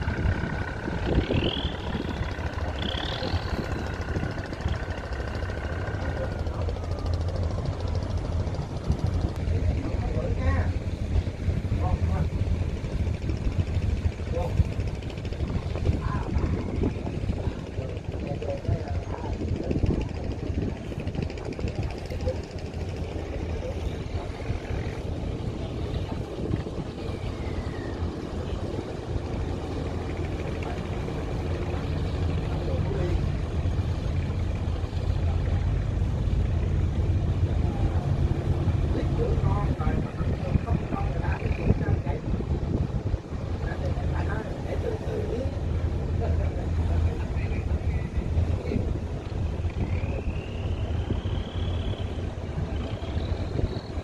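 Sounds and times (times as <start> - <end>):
boat diesel engine humming: 0.0 - 54.0
faint voices: 0.0 - 54.0.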